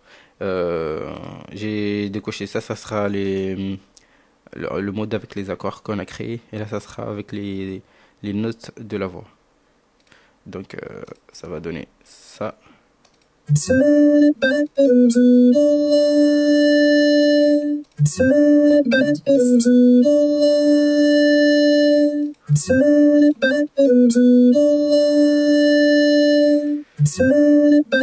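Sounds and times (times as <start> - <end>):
vocoded synth voice singing: 13.5 - 28.0.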